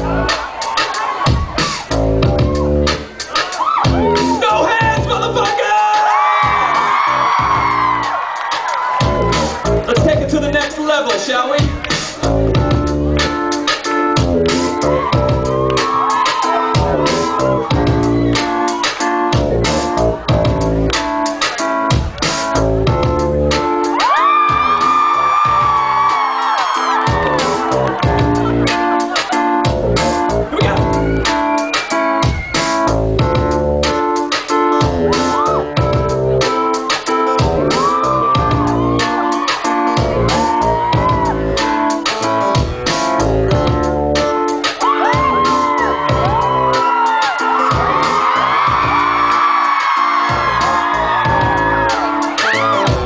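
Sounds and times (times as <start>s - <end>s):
live pop band music: 0.0s - 53.0s.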